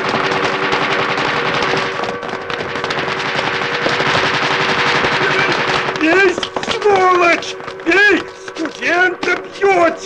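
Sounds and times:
rapid gunfire: 0.0 - 10.0
voices crying out: 5.2 - 10.0.

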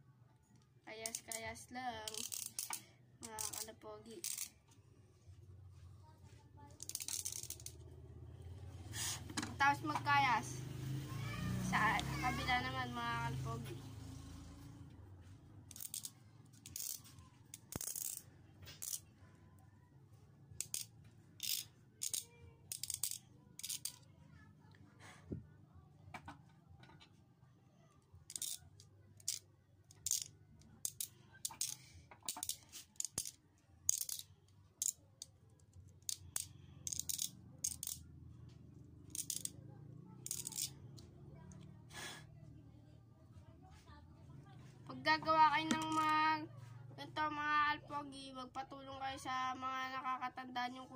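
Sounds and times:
low steady background hum: 0.0 - 50.9.

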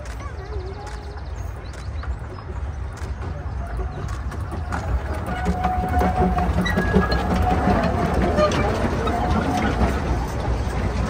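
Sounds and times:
steam locomotive rumbling: 0.0 - 11.0.

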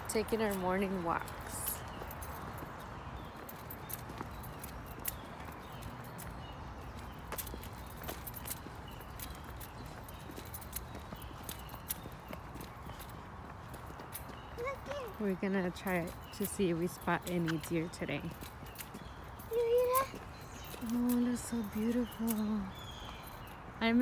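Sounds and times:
footsteps on paved path: 0.0 - 24.0.

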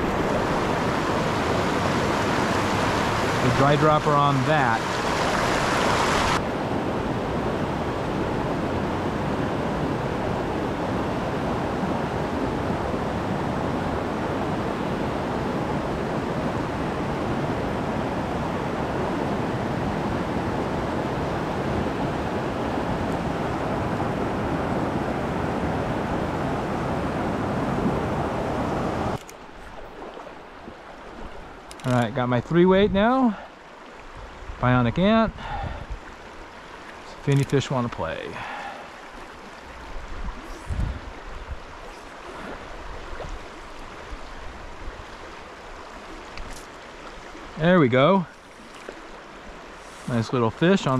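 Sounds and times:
stream rushing over boulders: 0.0 - 50.9.

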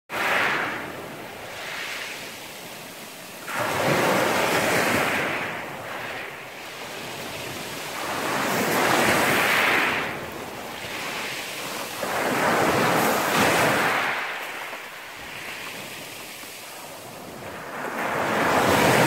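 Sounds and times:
waves breaking on pebble beach: 0.1 - 19.0.

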